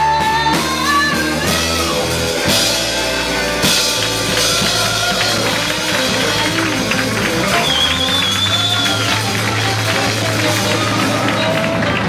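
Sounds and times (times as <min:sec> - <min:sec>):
blues band playing: 0:00.0 - 0:12.0
tenor saxophone: 0:01.0 - 0:12.0.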